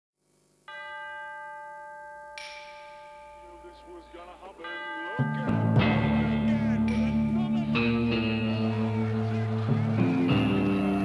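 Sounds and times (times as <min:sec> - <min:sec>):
bell-like chime ringing: 0:00.7 - 0:08.2.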